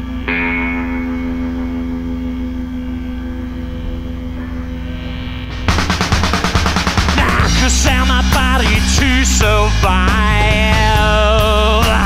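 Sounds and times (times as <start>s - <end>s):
electric guitar chord ringing: 0.0s - 12.0s
low hum: 0.0s - 12.0s.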